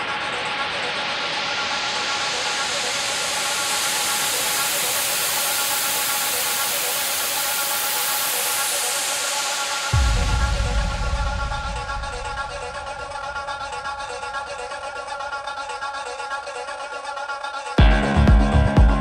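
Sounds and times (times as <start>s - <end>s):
white-noise riser: 0.0s - 15.8s
kick drum and bass: 9.9s - 14.5s, 17.8s - 19.0s.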